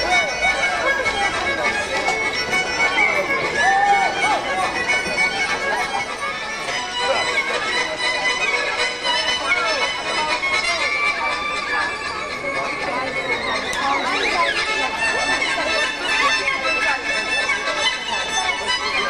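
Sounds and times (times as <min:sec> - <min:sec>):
violin playing lively tune: 0:00.0 - 0:19.0.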